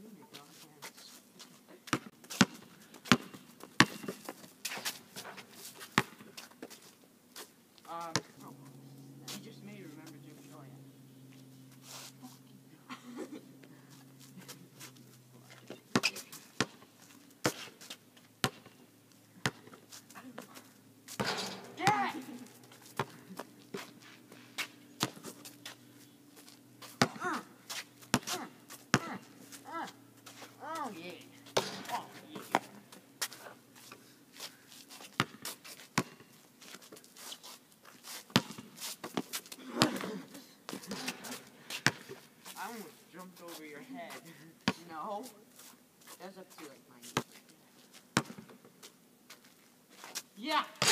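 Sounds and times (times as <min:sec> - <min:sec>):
basketball bouncing on asphalt: 0:01.9 - 0:05.0, 0:05.8 - 0:06.8, 0:08.0 - 0:08.4, 0:15.6 - 0:18.8, 0:19.4 - 0:20.5, 0:21.1 - 0:24.0, 0:24.6 - 0:34.0, 0:35.0 - 0:37.0, 0:38.3 - 0:40.0, 0:40.7 - 0:42.2, 0:48.1 - 0:48.7
players shouting: 0:21.6 - 0:22.6.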